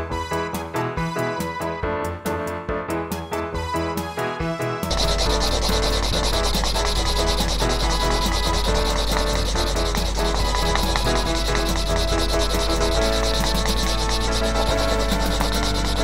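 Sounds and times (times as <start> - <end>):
faint music: 4.8 - 16.0
marker scratching on paper: 4.9 - 16.0.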